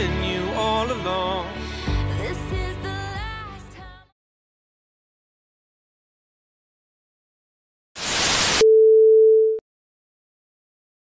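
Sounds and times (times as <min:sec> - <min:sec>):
electronic static hiss: 0:08.0 - 0:08.6.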